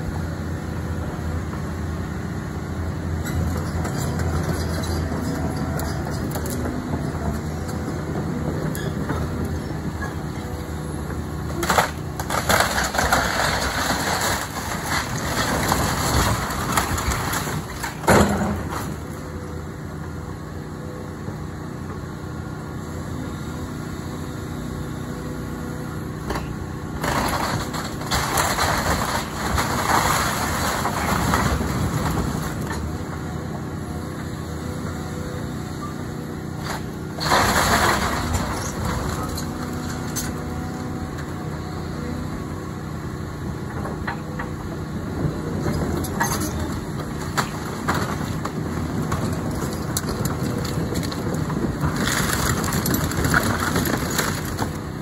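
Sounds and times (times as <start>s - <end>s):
excavator diesel engine running: 0.0s - 55.0s
timber and roofing crashing: 11.6s - 19.0s, 27.0s - 32.7s, 36.8s - 40.2s, 46.6s - 54.8s.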